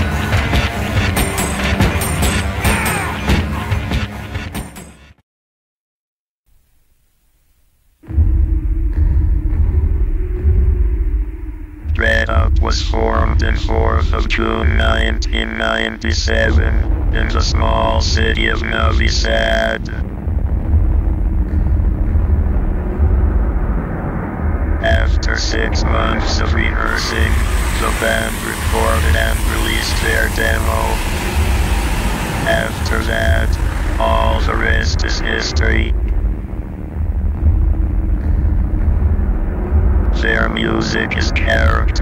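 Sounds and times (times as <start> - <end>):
dark rumbling ambient drone: 7.9 - 42.0.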